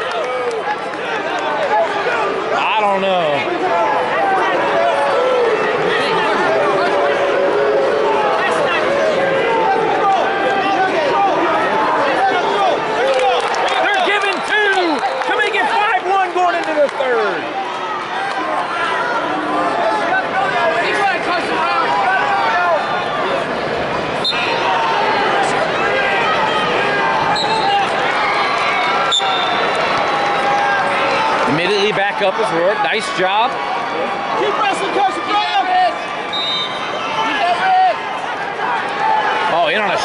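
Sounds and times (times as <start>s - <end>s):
crowd shouting and talking: 0.0s - 40.0s.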